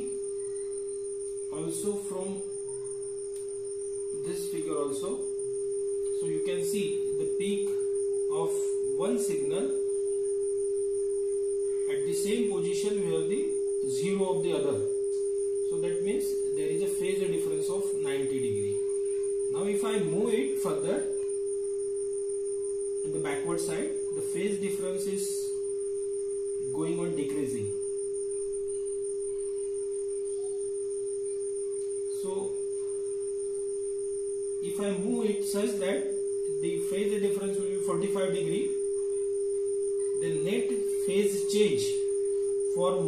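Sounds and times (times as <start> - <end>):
steady sine tone: 0.0 - 43.0.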